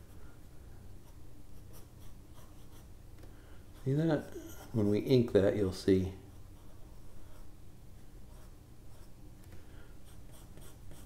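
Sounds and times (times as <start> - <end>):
pencil scratching on paper: 1.0 - 2.9, 6.3 - 7.5, 8.2 - 9.2, 10.0 - 11.0.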